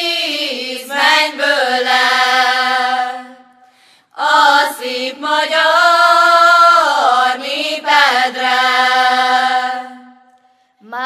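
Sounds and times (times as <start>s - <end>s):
women singing unaccompanied: 0.0s - 3.5s, 4.1s - 11.0s.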